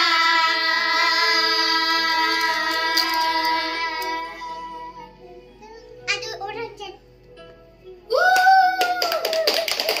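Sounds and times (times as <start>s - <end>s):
children singing: 0.0s - 5.1s.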